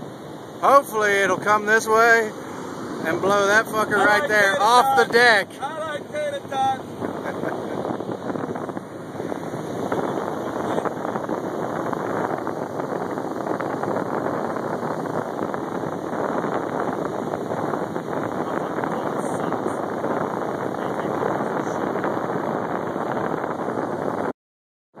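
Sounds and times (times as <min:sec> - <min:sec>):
wind buffeting microphone: 0:00.0 - 0:24.3.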